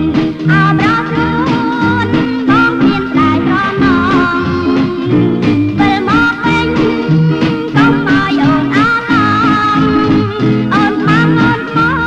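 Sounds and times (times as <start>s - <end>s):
pop song from cassette: 0.0s - 12.0s.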